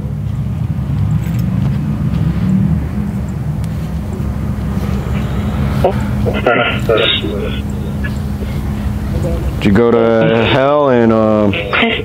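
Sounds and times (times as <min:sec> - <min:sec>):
low rumbling noise from speaker: 0:00.0 - 0:12.0.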